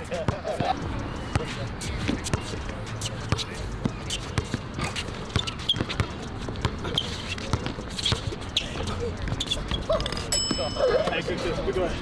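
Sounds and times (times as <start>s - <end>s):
basketball bouncing: 3.3s - 8.3s.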